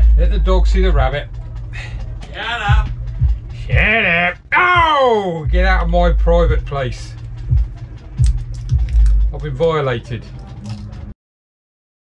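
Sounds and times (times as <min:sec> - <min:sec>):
drum thumps: 0:00.0 - 0:11.1
low steady bass line: 0:00.0 - 0:11.2.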